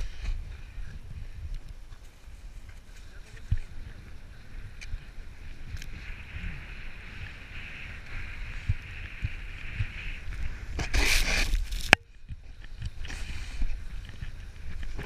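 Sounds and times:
wind rumble on camera: 0.0s - 15.0s
rush of sprayed snow: 2.0s - 11.9s, 12.8s - 15.0s
snowboard hissing on snow: 2.9s - 11.8s, 13.0s - 13.9s.

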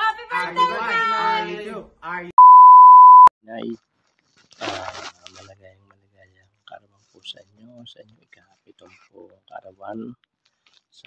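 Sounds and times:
steady electronic beep: 2.4s - 3.3s.

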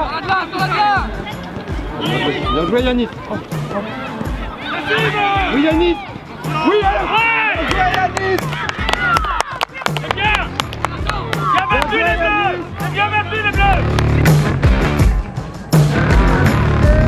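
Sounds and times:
background music with beat: 0.0s - 17.0s
young voices shouting: 0.1s - 13.9s.

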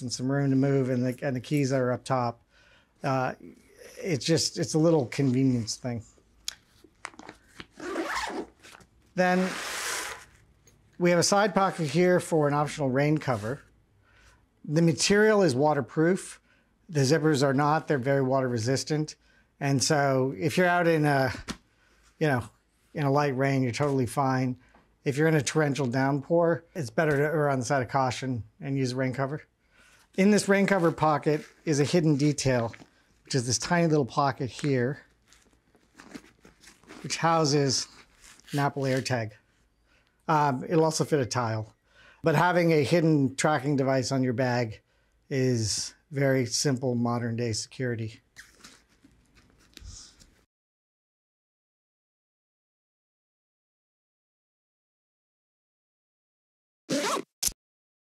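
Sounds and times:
zipper pulled shut: 7.6s - 10.4s, 56.9s - 57.6s
hands rustling backpack fabric: 35.1s - 37.2s.

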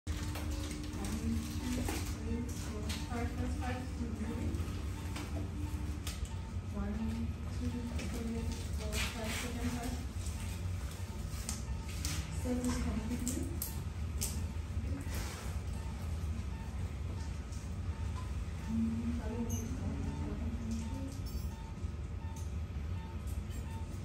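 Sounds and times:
steady low hum: 0.1s - 24.0s.

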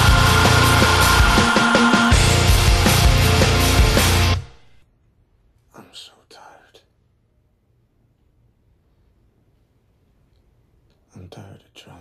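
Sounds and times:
man whispering: 5.6s - 7.1s, 10.9s - 12.0s.

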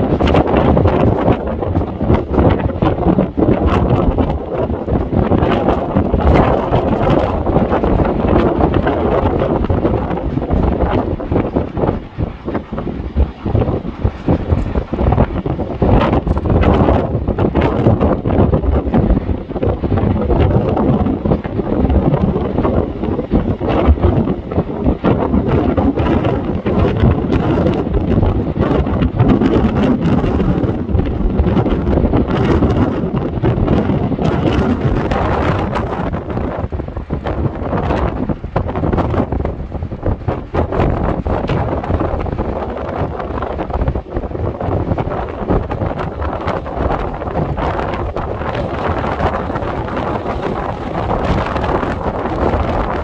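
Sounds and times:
storm wind buffeting microphone: 0.0s - 53.0s.

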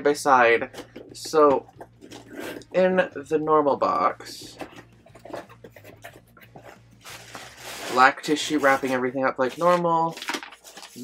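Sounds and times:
tissue paper rustling: 4.5s - 11.0s.

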